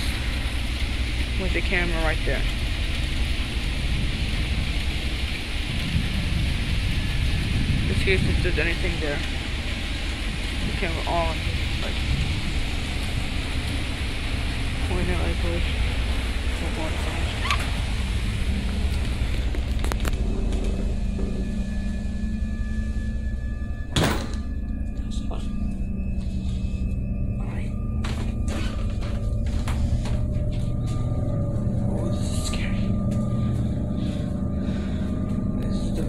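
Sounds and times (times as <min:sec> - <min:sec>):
faint humming tones: 0:00.0 - 0:36.0
steady low rumble: 0:00.0 - 0:36.0.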